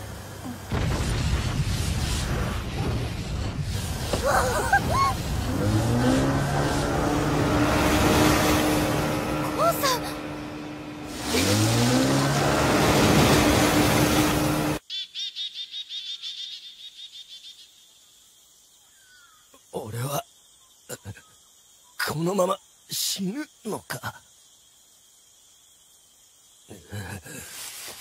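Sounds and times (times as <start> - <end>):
insects chirping: 0.0 - 11.3, 14.8 - 28.0
loud rushing wind: 0.7 - 14.8
small boat motors whining: 5.2 - 14.8.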